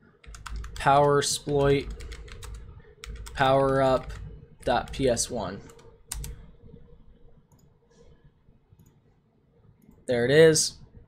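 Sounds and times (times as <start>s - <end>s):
computer keyboard clicks: 0.2s - 6.4s.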